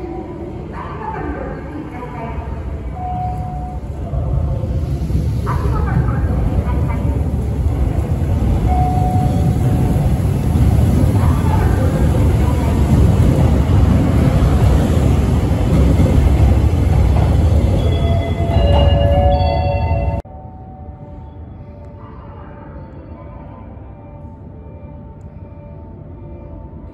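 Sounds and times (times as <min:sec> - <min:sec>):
electric train rumbling past: 0:00.0 - 0:21.7.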